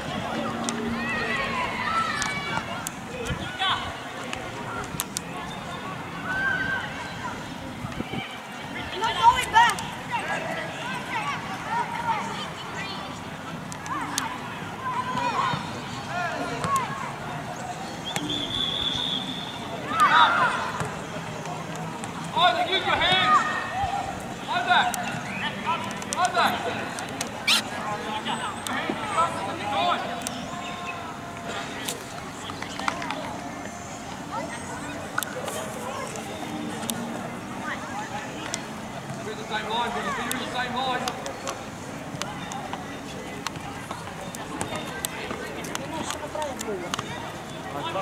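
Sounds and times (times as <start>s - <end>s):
children calling and shouting: 0.0s - 48.0s
children shouting: 0.2s - 3.8s.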